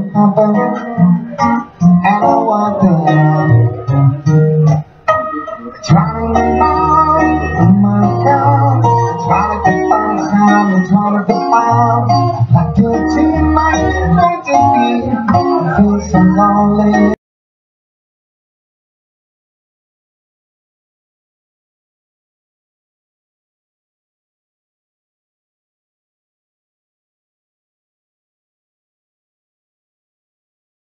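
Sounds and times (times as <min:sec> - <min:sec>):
amplified acoustic guitar: 0:00.0 - 0:17.2
man singing: 0:00.0 - 0:17.2
sustained low bass notes: 0:05.7 - 0:17.2.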